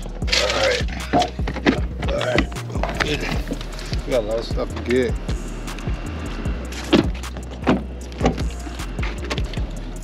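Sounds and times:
steady low hum: 0:01.4 - 0:10.0
car door swinging open: 0:06.8 - 0:09.6.

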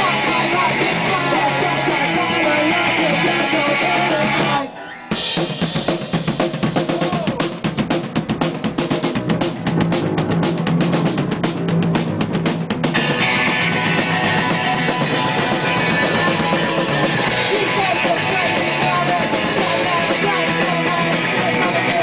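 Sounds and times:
fast hard drum beat: 0:00.0 - 0:22.0
live punk rock band: 0:00.0 - 0:22.0.

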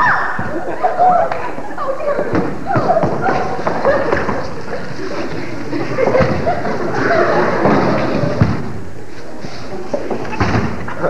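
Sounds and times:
indistinct voices: 0:00.0 - 0:11.0
knocks and thumps: 0:07.6 - 0:08.8.

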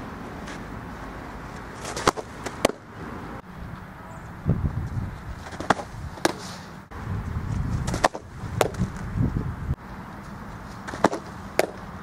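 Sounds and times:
softballs smacking into mitt: 0:01.8 - 0:02.8, 0:07.9 - 0:08.9, 0:10.8 - 0:11.8.

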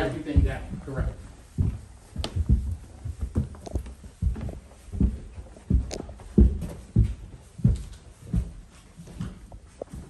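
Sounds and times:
footsteps on carpeted stairs: 0:00.0 - 0:10.0.

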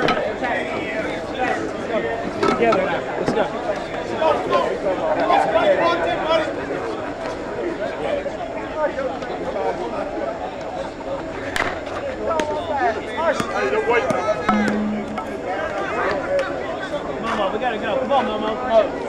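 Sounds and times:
people chattering and calling out: 0:00.0 - 0:19.0.

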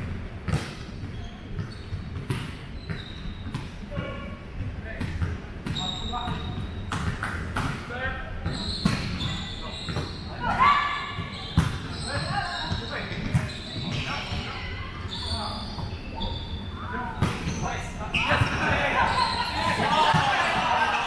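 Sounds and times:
volleyball hits and bounces: 0:00.4 - 0:04.2, 0:05.0 - 0:09.2, 0:19.6 - 0:21.0
sneaker squeaks: 0:00.5 - 0:21.0
players calling out: 0:13.8 - 0:21.0.

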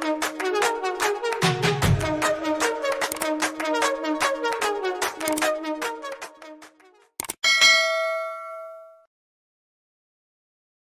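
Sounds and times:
bell-like chime of jingle: 0:07.4 - 0:09.1.

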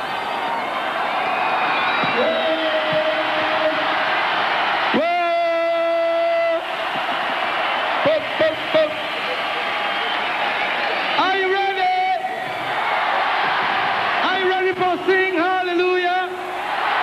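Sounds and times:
arena crowd cheering: 0:00.0 - 0:17.0
man calling into a microphone: 0:02.0 - 0:04.0, 0:04.9 - 0:06.7, 0:08.0 - 0:09.6, 0:11.1 - 0:12.5, 0:14.2 - 0:16.5.

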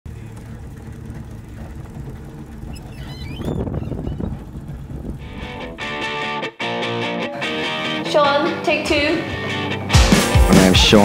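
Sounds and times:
old car engine rumbling: 0:00.0 - 0:06.2
brief high squeal: 0:02.7 - 0:04.2
guitar music: 0:05.2 - 0:11.0.

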